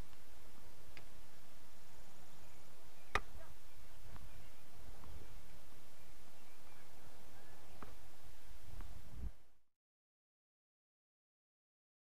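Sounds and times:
steady hiss: 0.0 - 9.5.

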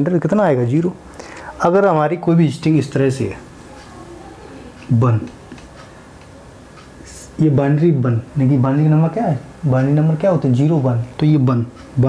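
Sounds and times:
person speaking: 0.0 - 5.9, 6.9 - 12.0.

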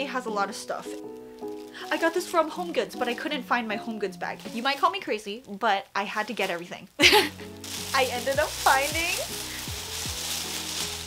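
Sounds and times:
background music: 0.0 - 5.5, 7.0 - 11.0
plastic bag rustling: 0.3 - 11.0.

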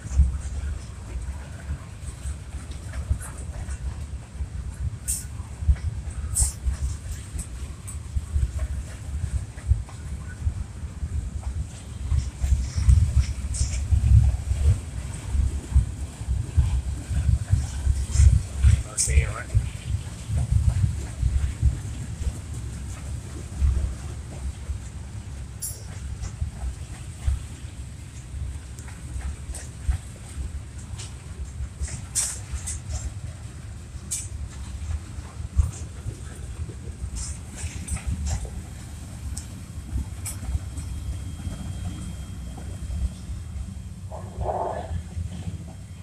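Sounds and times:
train cars rumbling past: 0.0 - 46.0.

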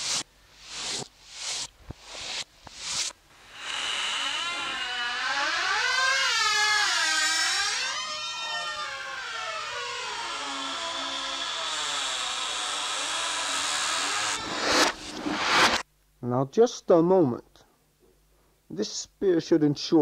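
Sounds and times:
sweeping electronic whoosh: 0.0 - 3.6, 13.4 - 15.8.

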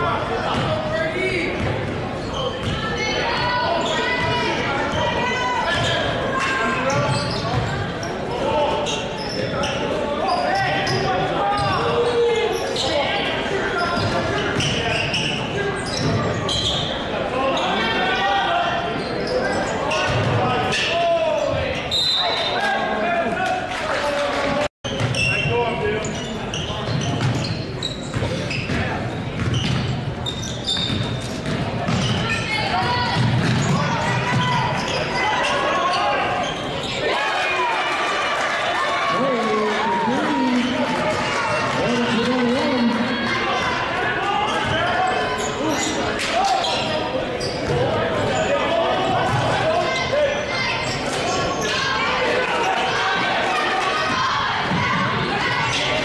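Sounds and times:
indistinct voices in a hall: 0.0 - 56.0.

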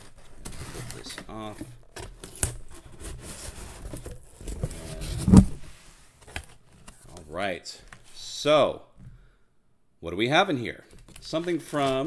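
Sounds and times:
cardboard flaps rustling and scraping: 0.0 - 7.2
loud thump: 5.2 - 5.7.

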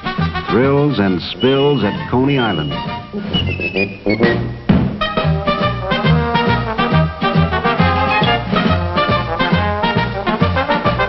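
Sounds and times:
background music: 0.0 - 11.0
high whistle-like line: 1.3 - 4.7.

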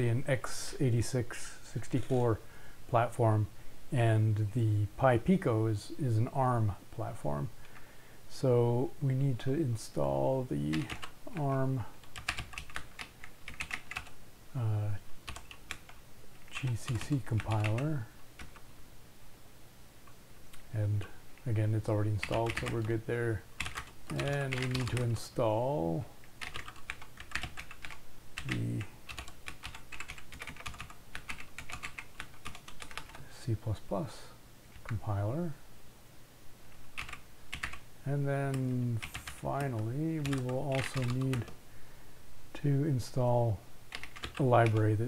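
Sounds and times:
typing on computer keyboard: 10.7 - 11.4, 12.0 - 14.2, 15.2 - 18.6, 22.2 - 22.9, 23.6 - 25.1, 26.4 - 33.2, 37.0 - 37.8, 38.6 - 41.6, 43.9 - 44.8.

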